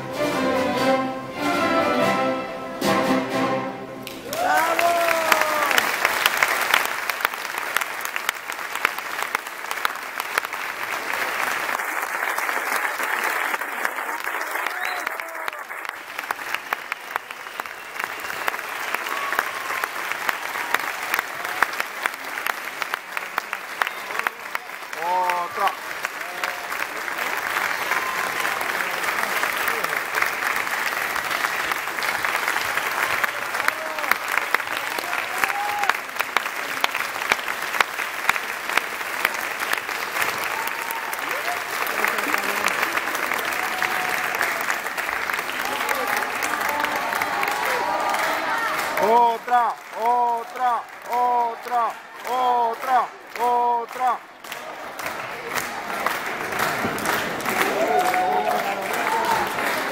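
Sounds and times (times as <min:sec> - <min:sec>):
audience applauding: 0:03.0 - 0:59.9
person whooping: 0:04.3 - 0:05.8, 0:57.7 - 0:59.5.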